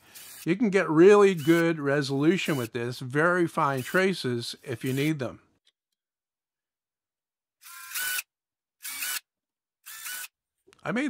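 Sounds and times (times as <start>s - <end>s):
cordless drill whining: 0.0s - 0.5s, 1.1s - 2.8s, 3.6s - 5.2s, 7.6s - 10.4s.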